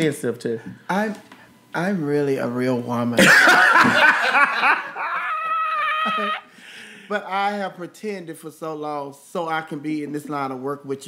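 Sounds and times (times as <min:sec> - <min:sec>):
person squealing high-pitched: 0:05.1 - 0:06.5
faint breathy hiss: 0:06.4 - 0:07.3.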